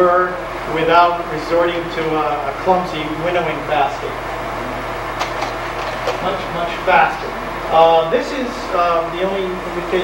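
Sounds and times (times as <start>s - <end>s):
faint electrical hum: 0.0s - 10.0s
projector cooling fan hum: 0.0s - 10.0s.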